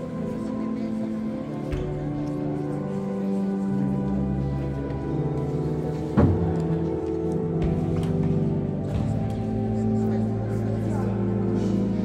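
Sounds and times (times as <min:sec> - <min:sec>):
slow church music: 0:00.0 - 0:12.0.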